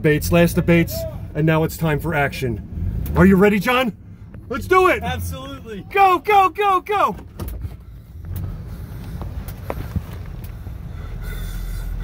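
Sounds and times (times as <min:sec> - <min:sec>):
van engine idling: 0:00.0 - 0:12.0
light clicks and bumps: 0:07.1 - 0:10.6.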